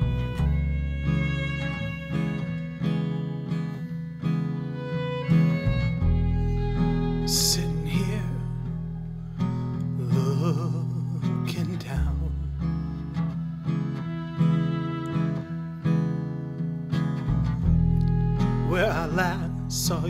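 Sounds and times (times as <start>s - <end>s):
upright bass notes: 0.0s - 2.7s, 5.6s - 9.4s, 17.3s - 20.0s
acoustic guitar: 0.0s - 20.0s
wavering violin line: 0.0s - 20.0s.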